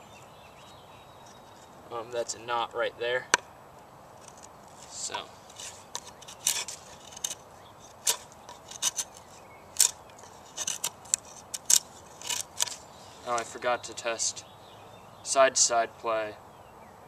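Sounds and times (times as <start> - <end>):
knife cutting wood: 4.2 - 13.5.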